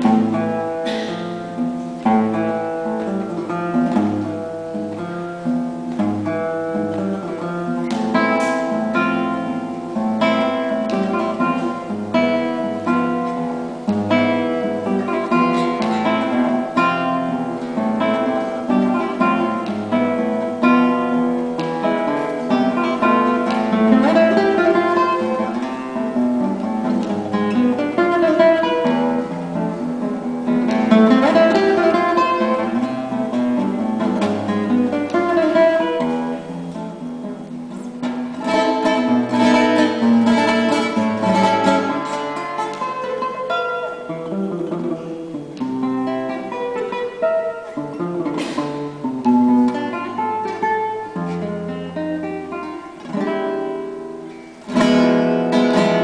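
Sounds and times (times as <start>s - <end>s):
acoustic guitar plucked and strummed: 0.0s - 56.0s.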